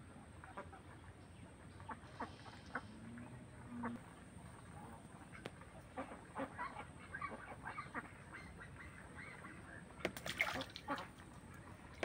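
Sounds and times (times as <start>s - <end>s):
faint waterfowl calling: 0.4s - 12.0s.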